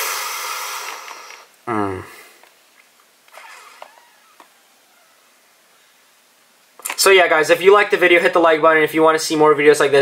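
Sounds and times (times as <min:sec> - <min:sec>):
quiet hiss: 0:00.0 - 0:10.0.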